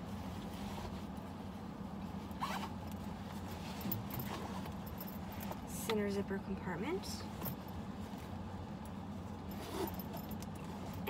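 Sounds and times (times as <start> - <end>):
steady low hum: 0.0 - 11.0
bag rustling: 2.3 - 5.7, 9.4 - 11.0.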